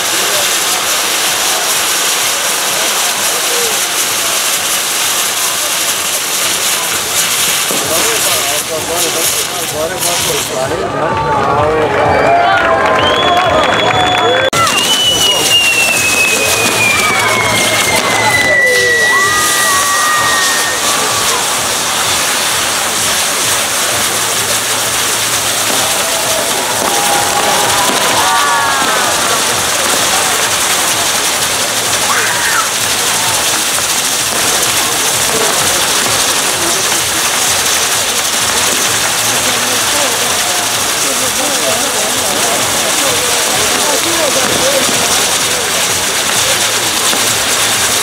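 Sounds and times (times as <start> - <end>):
fireworks hissing: 0.0 - 12.4, 13.0 - 48.0
crowd voices: 0.0 - 48.0
high whistle gliding down: 12.1 - 22.4.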